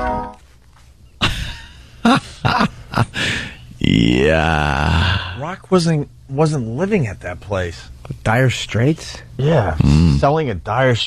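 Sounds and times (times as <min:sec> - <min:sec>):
men laughing and groaning: 0:01.2 - 0:05.4.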